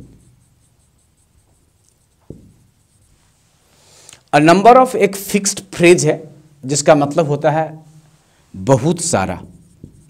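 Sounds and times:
marker writing on whiteboard: 0.0 - 3.4, 8.7 - 10.0.

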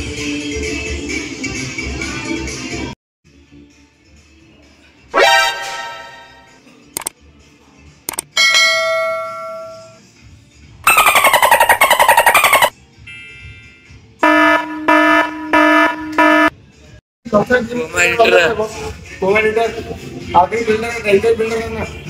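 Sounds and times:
ringing chime: 8.4 - 10.0
warbling tone sliding down: 10.9 - 12.7.

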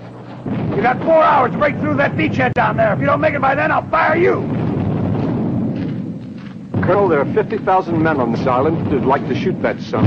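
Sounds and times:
battle rumble: 0.0 - 10.0
man's voice: 0.7 - 4.5, 6.8 - 10.0.

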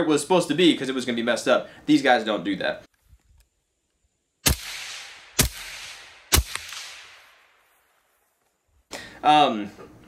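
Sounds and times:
gunshots echoing: 4.4 - 7.6.

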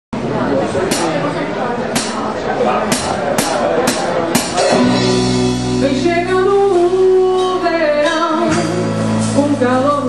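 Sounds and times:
room chatter: 0.2 - 8.4
live band with guitar and drums: 0.2 - 10.0
person singing: 4.6 - 10.0.

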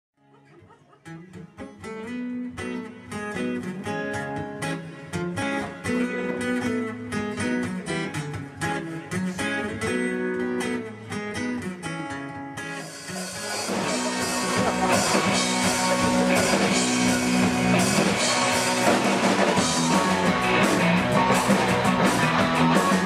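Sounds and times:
picked guitar melody: 0.2 - 23.0
rock band playing: 2.5 - 11.9, 12.5 - 23.0
drums and cymbals: 12.8 - 23.0.

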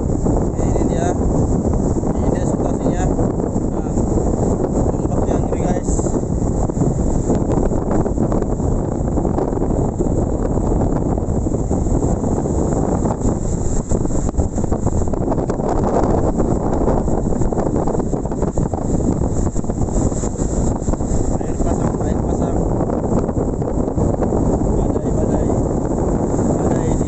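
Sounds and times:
wind buffeting microphone: 0.0 - 27.0
surf breaking on shore: 9.8 - 27.0.

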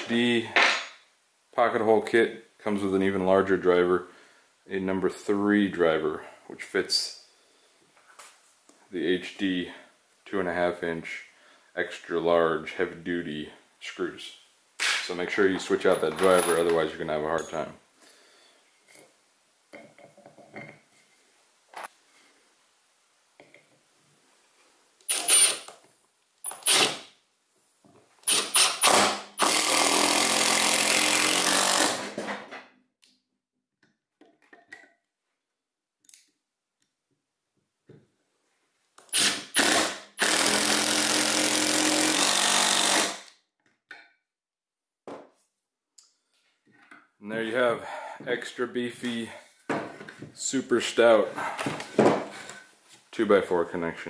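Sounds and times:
impact driver driving screws: 25.1 - 25.8, 26.4 - 27.0, 28.2 - 32.3, 39.0 - 43.3.

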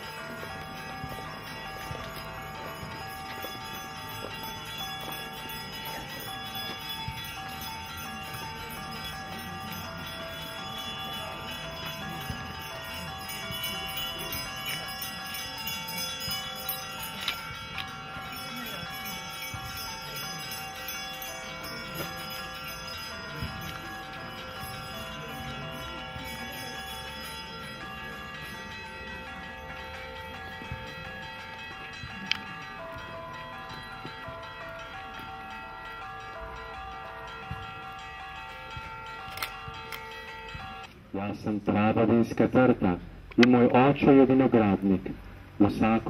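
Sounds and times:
church bells ringing: 0.0 - 46.0.

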